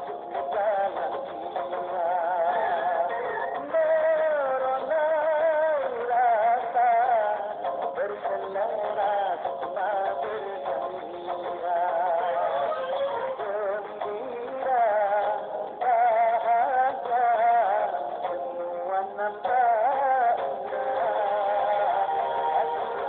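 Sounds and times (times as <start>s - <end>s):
person singing with vibrato: 0.0s - 23.0s.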